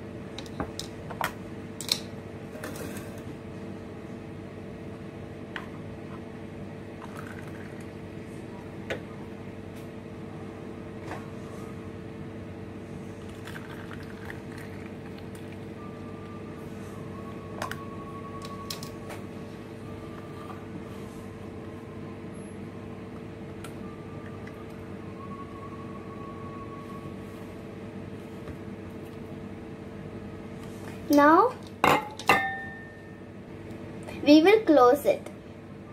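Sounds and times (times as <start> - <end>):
mechanical hum: 0.0 - 35.9.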